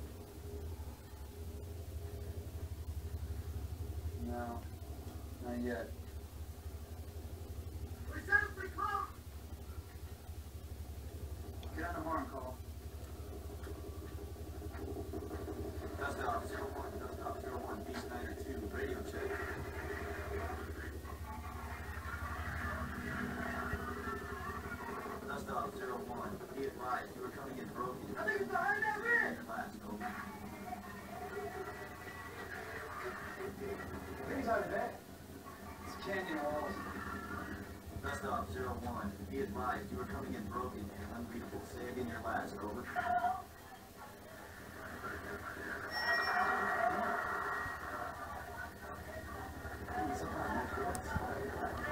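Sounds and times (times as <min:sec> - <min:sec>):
faint background music: 0:00.0 - 0:51.9
muffled television dialogue: 0:00.0 - 0:51.9.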